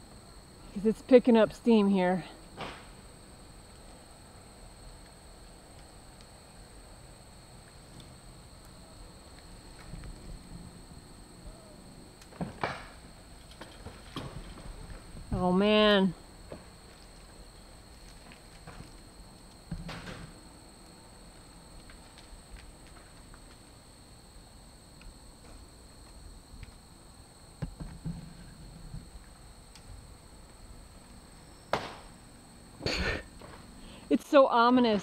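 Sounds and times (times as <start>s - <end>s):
wooden timber frame cracking and creaking: 12.2s - 15.4s, 16.5s - 19.1s.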